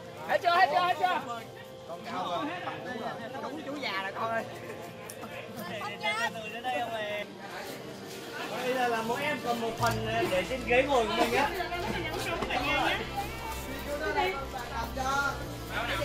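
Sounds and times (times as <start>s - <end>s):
voices chattering: 0.0s - 16.0s.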